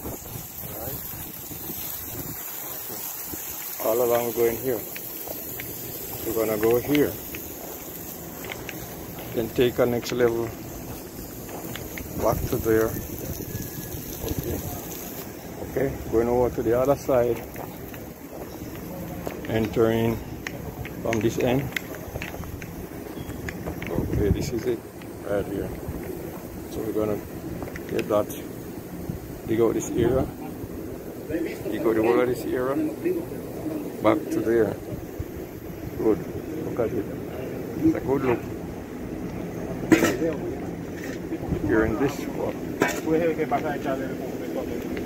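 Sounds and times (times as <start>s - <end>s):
wind buffeting microphone: 0.0s - 3.6s, 22.0s - 24.7s
steady high hiss: 0.0s - 45.0s
footsteps on gravel: 10.0s - 12.6s.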